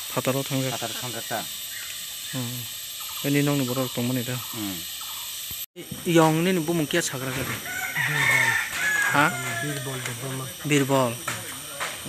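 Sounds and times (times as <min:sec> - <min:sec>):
rooster crowing: 0:07.3 - 0:10.5.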